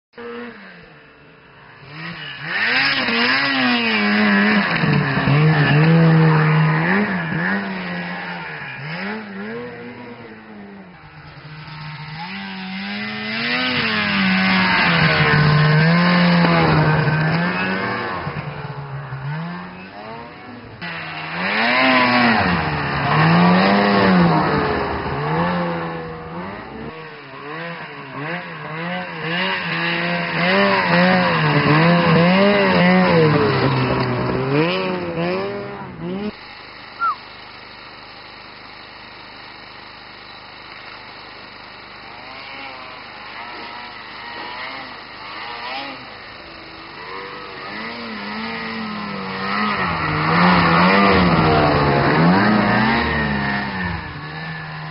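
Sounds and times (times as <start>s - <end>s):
snowmobile engines revving: 0.2s - 54.9s.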